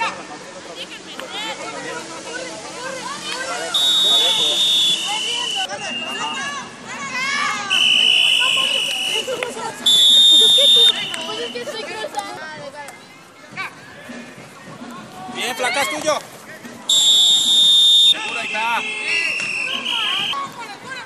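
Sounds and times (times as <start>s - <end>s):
players and onlookers shouting: 1.3s - 12.0s
shrill whistle blasts: 3.7s - 6.4s, 7.7s - 11.7s, 16.9s - 20.4s.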